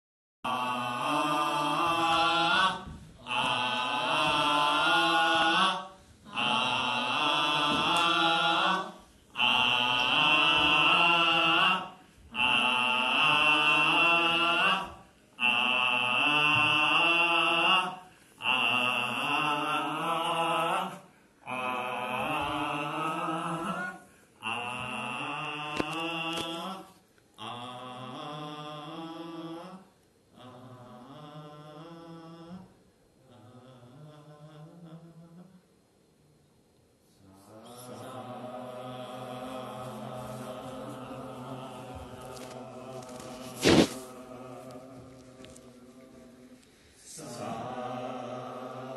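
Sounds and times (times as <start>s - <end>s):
group chanting in unison: 0.5s - 35.2s, 37.2s - 48.9s.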